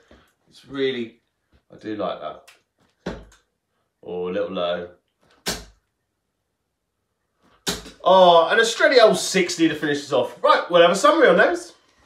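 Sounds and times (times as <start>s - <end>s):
dart striking dartboard: 5.4s - 5.8s, 7.6s - 8.0s.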